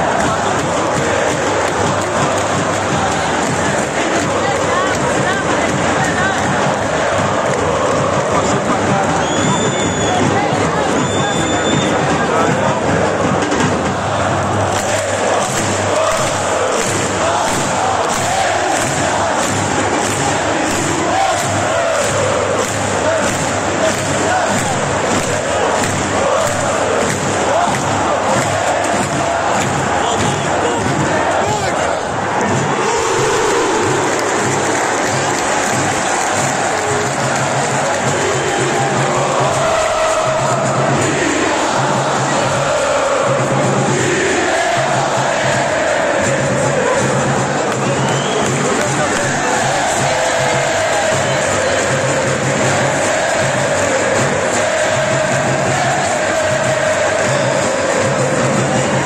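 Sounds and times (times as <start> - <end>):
crowd singing a chant: 0.0 - 59.0
rhythmic clapping: 0.0 - 59.0.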